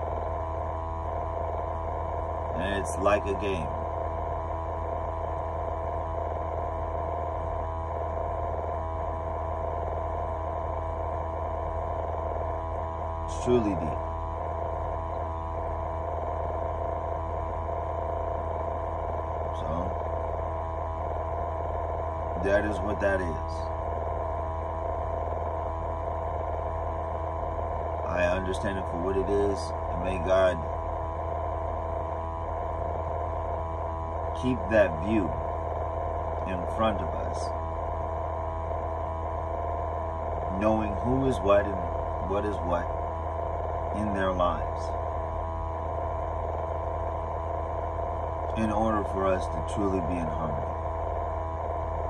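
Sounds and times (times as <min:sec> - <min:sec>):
faint steady tones: 0:00.0 - 0:52.0
truck cab machine hum: 0:00.0 - 0:52.0.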